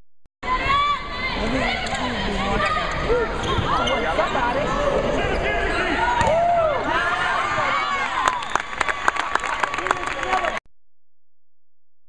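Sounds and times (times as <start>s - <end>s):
players' voices: 0.4s - 8.3s.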